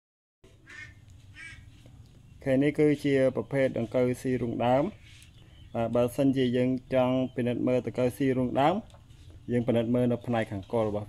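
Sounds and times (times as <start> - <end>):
faint short bird calls: 0.5 - 2.4.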